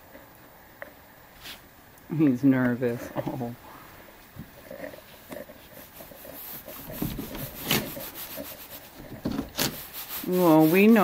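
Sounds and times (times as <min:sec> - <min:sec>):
rubbing and scuffing against wood: 0:01.4 - 0:01.7, 0:04.2 - 0:11.0.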